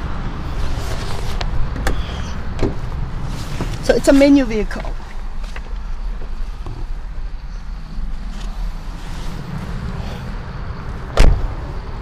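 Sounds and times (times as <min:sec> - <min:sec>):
car door shutting: 0:01.7 - 0:02.8, 0:11.1 - 0:11.6.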